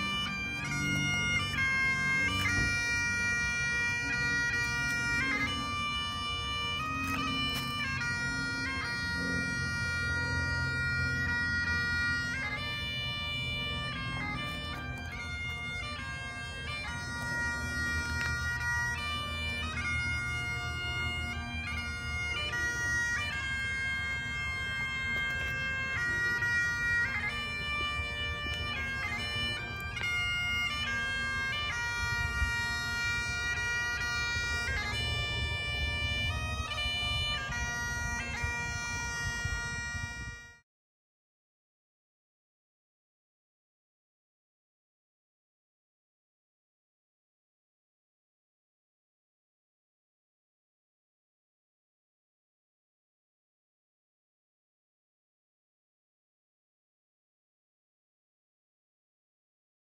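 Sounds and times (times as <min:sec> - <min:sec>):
bagpipes playing a tune: 0:00.0 - 0:40.6.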